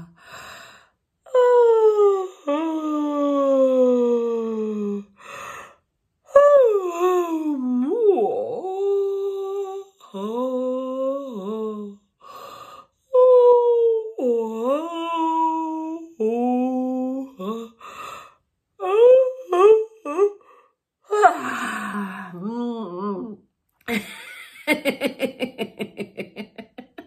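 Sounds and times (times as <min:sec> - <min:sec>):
woman vocalizing playfully: 0:21.1 - 0:27.0.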